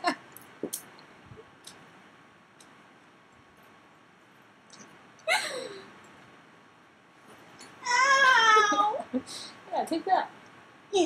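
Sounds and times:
woman's high-pitched falling vocal: 7.8 - 9.1.

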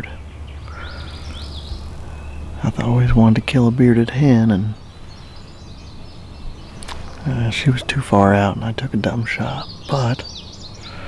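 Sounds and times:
low outdoor rumble: 0.0 - 11.0
songbirds chirping: 0.0 - 11.0.

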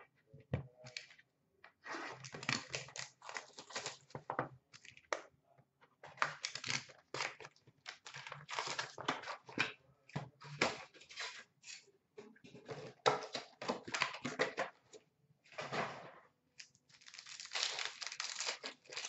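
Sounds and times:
foil wrappers tearing and crinkling: 2.2 - 4.0, 6.4 - 9.0, 16.6 - 19.0.

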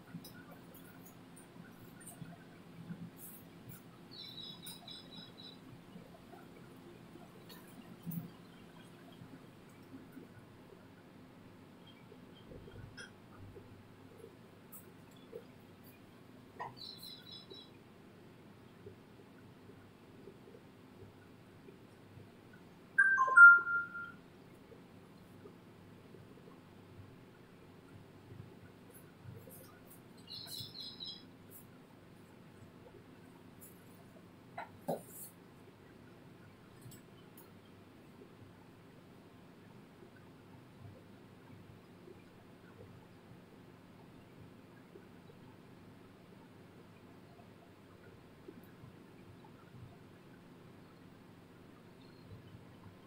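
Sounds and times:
low steady hum: 0.0 - 53.0
electronic chime: 23.0 - 24.2.

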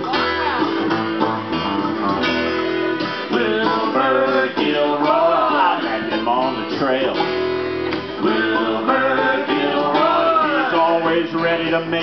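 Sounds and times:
acoustic string band playing: 0.0 - 12.0.

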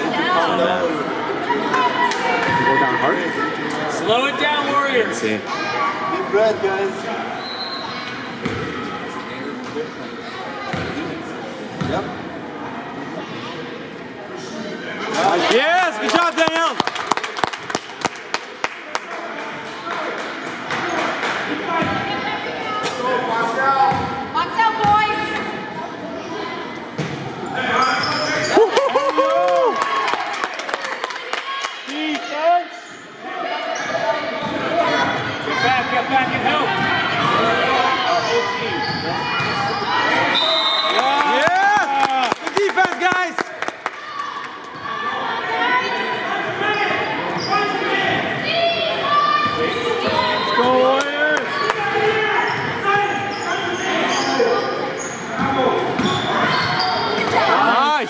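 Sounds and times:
echoing voices in hall: 0.0 - 58.0.

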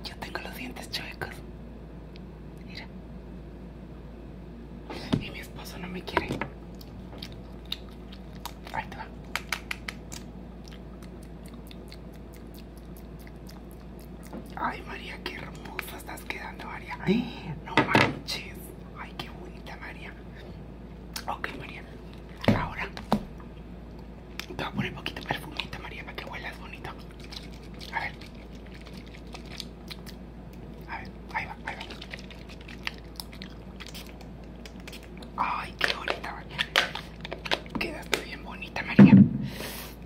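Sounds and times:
whispered mouth sounds: 2.6 - 2.9, 4.9 - 6.4, 8.4 - 10.3, 14.4 - 20.4, 24.4 - 27.1, 27.8 - 28.3, 30.8 - 32.2, 33.9 - 36.8, 37.8 - 39.1
low thump: 39.0 - 39.5.

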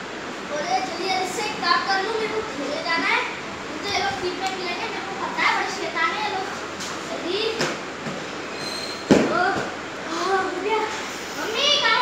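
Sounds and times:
voices talking: 0.5 - 8.0.

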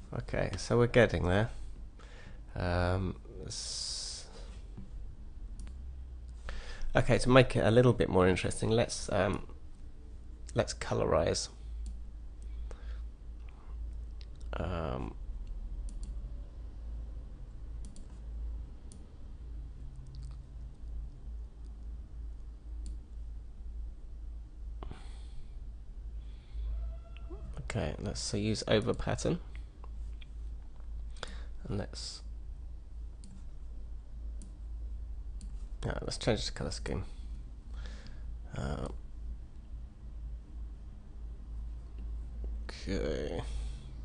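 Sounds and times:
steady low hum: 0.0 - 44.0
computer mouse clicks: 15.4 - 16.2, 17.8 - 18.2, 33.2 - 33.5.

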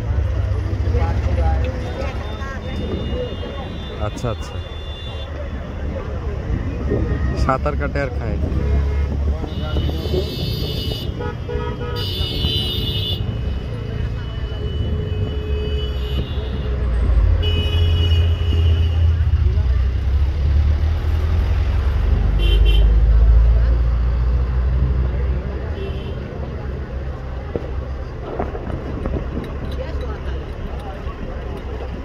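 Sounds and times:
low traffic rumble: 0.0 - 32.0
vehicle horns: 1.6 - 5.9, 8.4 - 19.5, 22.3 - 23.1, 25.6 - 26.5.

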